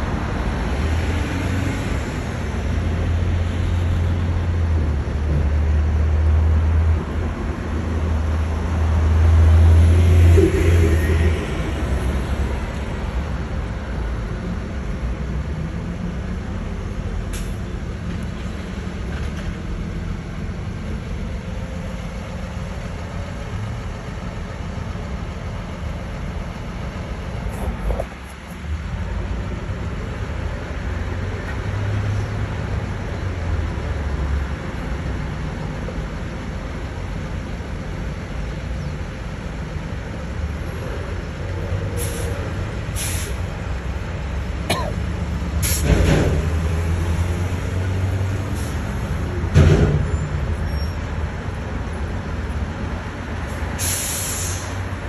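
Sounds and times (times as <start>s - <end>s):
traffic engines rumbling: 0.0s - 55.0s
tyres on road: 0.0s - 55.0s.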